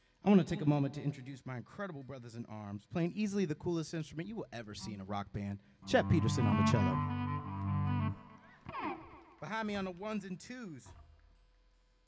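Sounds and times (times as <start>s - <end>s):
cello bowing a low note: 5.9s - 8.4s.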